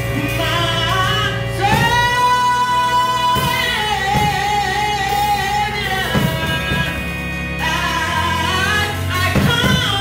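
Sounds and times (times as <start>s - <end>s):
live drums and instruments: 0.0s - 10.0s
woman singing gospel: 0.0s - 10.0s.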